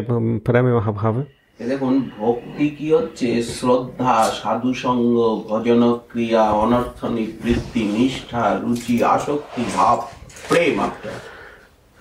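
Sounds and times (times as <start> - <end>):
man speaking: 0.0 - 11.3.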